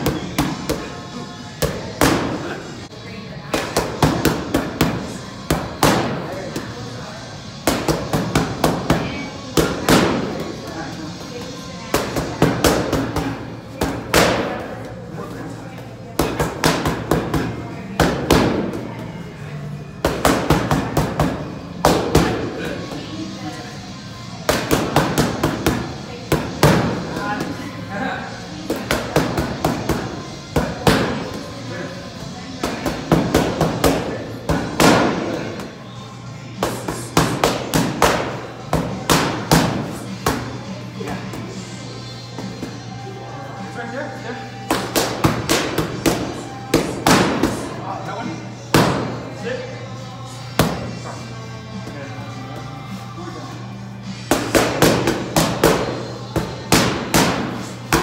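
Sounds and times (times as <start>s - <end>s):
background music: 0.0s - 58.0s.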